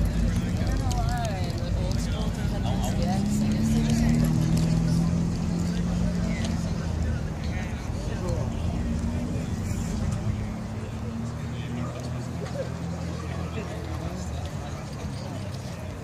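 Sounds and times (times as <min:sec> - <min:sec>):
people chatting: 0:00.0 - 0:16.0.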